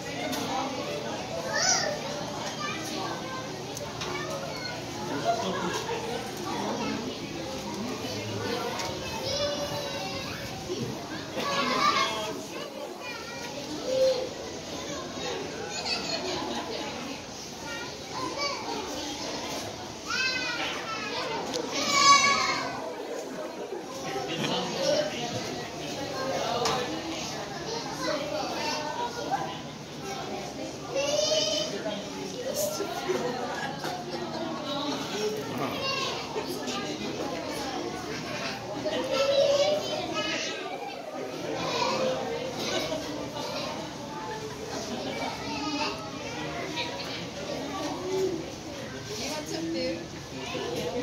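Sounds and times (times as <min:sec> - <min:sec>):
children shouting and squealing: 0:00.0 - 0:25.4, 0:26.0 - 0:49.1
crowd chatter: 0:00.0 - 0:51.0.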